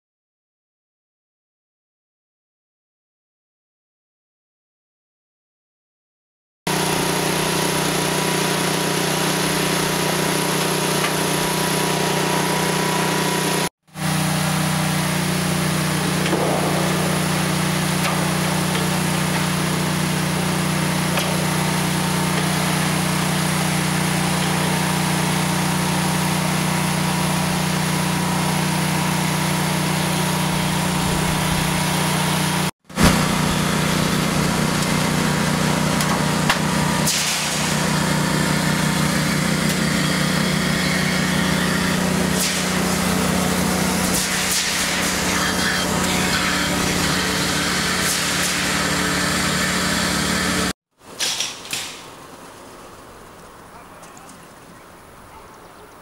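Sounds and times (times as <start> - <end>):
roll former machine humming: 6.7 - 50.7.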